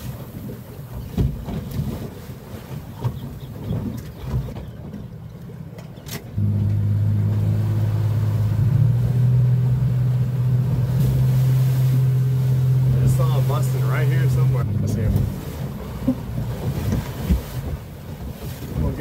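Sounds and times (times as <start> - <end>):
outboard motor droning: 0.0 - 19.0.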